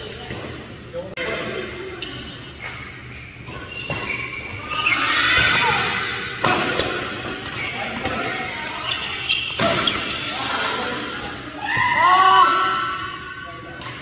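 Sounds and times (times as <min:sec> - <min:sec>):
players' voices: 0:04.6 - 0:14.0.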